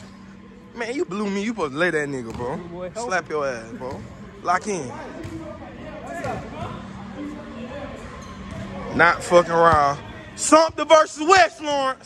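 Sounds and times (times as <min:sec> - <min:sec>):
people talking: 0:00.8 - 0:12.0.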